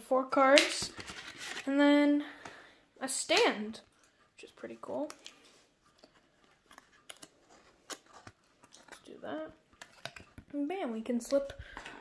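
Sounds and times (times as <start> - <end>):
paperboard rustling: 0.9 - 1.7.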